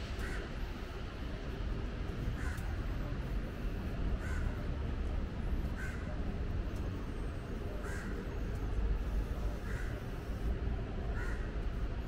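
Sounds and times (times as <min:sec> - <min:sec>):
steady low rumble: 0:00.0 - 0:06.8
crow cawing: 0:11.2 - 0:11.5.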